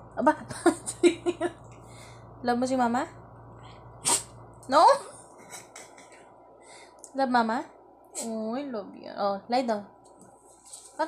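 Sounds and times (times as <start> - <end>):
woman speaking: 0.2 - 1.3, 2.4 - 3.2, 4.6 - 5.2, 7.1 - 9.9
dog sneezing: 4.0 - 4.4.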